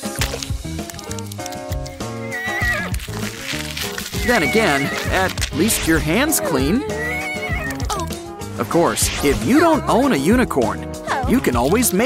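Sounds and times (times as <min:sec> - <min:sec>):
background music: 0:00.0 - 0:12.0
horse whinny: 0:02.2 - 0:02.9.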